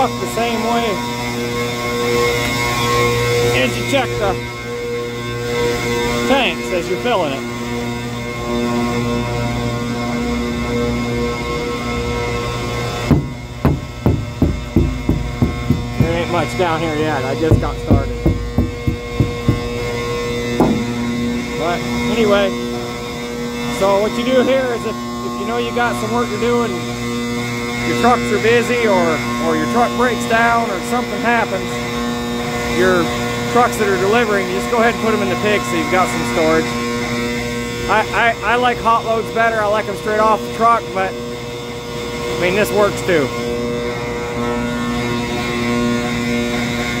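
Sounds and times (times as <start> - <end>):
pneumatic blower humming drone: 0.0 - 39.0, 40.2 - 47.0
short knocks: 13.1 - 21.7.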